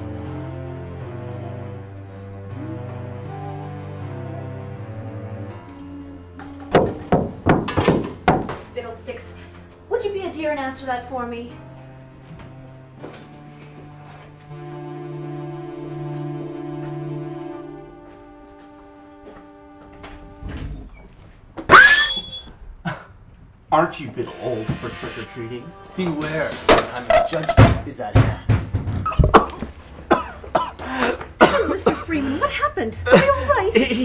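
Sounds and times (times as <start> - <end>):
soft background music: 0.0 - 21.8, 23.7 - 34.0
knocking on wooden door: 6.7 - 8.7, 27.6 - 29.4
rising jump-scare sting: 32.7 - 34.0.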